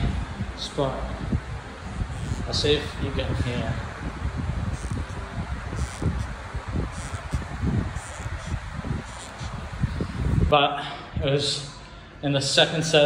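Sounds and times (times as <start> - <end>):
microphone rubbing against knee: 1.2 - 10.6
faint scratchy sounds: 1.5 - 10.6.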